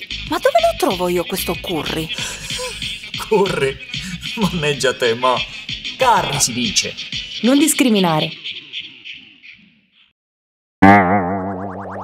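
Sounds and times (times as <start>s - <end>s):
twangy boing sound effect: 10.8s - 12.0s.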